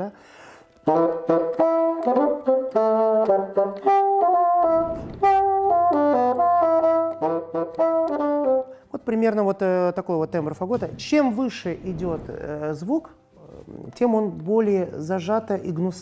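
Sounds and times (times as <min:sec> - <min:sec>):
bassoon melody: 0:00.7 - 0:09.0.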